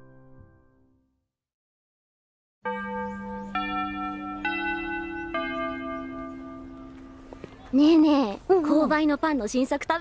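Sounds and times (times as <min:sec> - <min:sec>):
school bell chime notes: 0:02.6 - 0:08.3.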